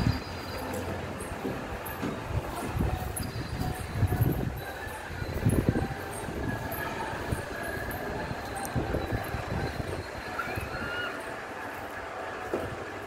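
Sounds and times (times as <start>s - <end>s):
wind buffeting microphone: 1.0s - 11.1s.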